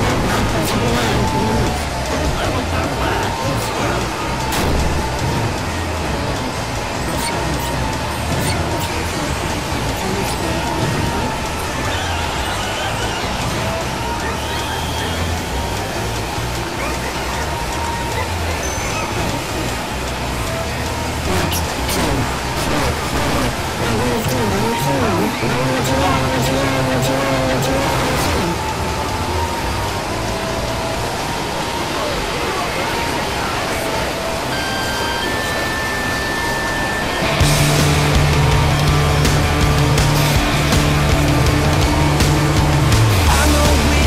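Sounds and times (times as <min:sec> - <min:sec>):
overlapping voices: 0:00.0 - 0:29.6
music: 0:00.0 - 0:44.0.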